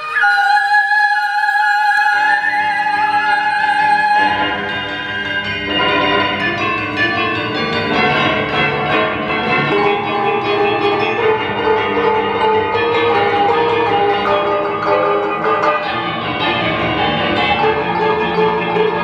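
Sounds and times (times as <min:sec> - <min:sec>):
metallic percussion ensemble: 0:00.0 - 0:19.0.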